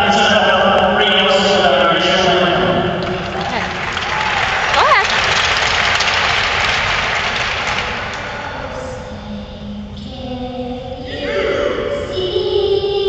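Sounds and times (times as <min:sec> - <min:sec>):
crowd applauding: 0:03.0 - 0:08.4.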